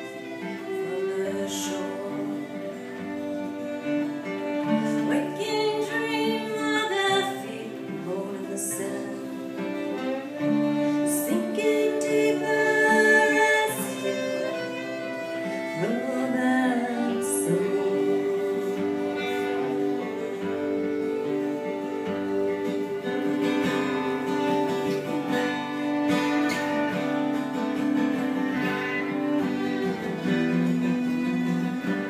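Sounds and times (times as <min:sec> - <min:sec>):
woman singing: 0:00.0 - 0:03.2, 0:04.6 - 0:09.9, 0:10.6 - 0:24.5
acoustic and electric guitars: 0:00.0 - 0:32.0
violin: 0:00.0 - 0:32.0.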